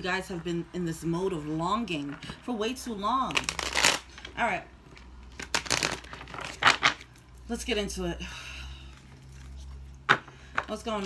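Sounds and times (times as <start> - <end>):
cards being shuffled: 3.3 - 7.2.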